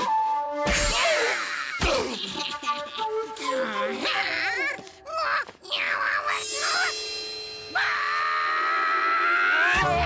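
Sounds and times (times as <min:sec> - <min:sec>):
background music: 0:00.0 - 0:10.0
cartoon voice yelling: 0:03.4 - 0:07.0.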